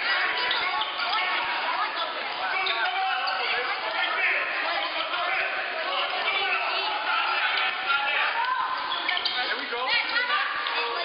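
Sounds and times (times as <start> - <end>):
shouts and chatter: 0.0 - 11.0.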